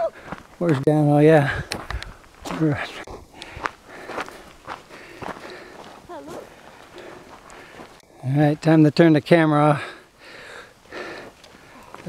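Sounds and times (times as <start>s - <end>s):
footsteps on loose gravel: 0.0s - 8.0s.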